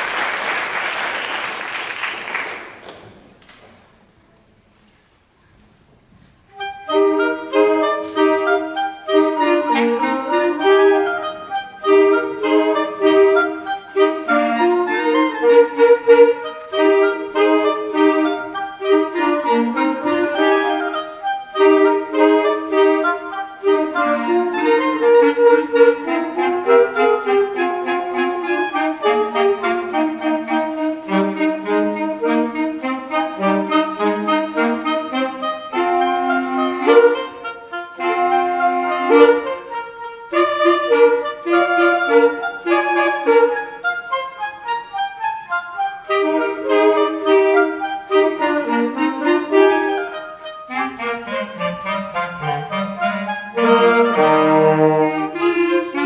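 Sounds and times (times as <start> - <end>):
woodwind ensemble playing: 6.3 - 56.0.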